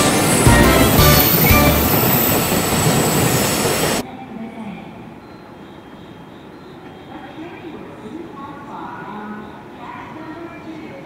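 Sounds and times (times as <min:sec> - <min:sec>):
freight train passing: 0:00.0 - 0:04.0
railway station background: 0:00.0 - 0:11.0.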